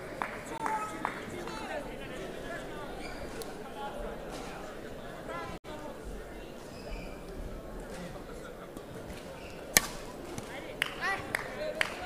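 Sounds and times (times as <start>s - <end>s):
murmur of sports hall: 0.0s - 12.0s
racket striking shuttlecock: 9.7s - 10.5s.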